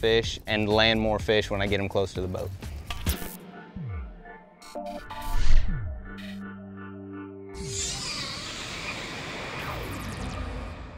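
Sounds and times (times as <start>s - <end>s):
whoosh with falling pitch sweep: 7.6s - 10.9s.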